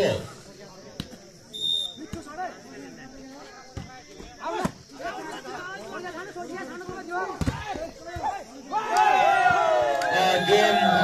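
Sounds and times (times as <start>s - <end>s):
spectators chattering: 0.0s - 11.0s
crowd shouting: 4.4s - 11.0s.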